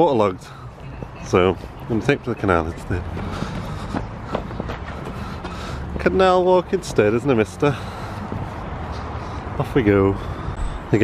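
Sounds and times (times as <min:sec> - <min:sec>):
footsteps on tarmac: 0:00.0 - 0:10.8.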